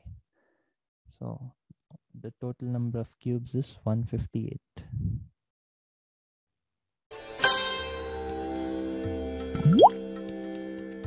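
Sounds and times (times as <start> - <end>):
upward-sliding bloop effect: 9.6 - 10.0.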